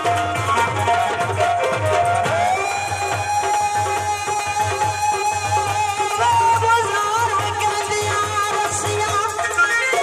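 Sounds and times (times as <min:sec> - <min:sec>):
hand-drum rhythm: 0:00.0 - 0:10.0
woman singing into a microphone: 0:02.0 - 0:10.0.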